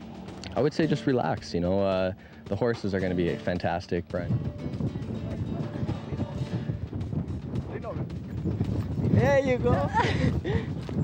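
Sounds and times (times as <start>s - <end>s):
horse hoofbeats on grass: 0.0s - 11.0s
wind noise on microphone: 0.1s - 11.0s.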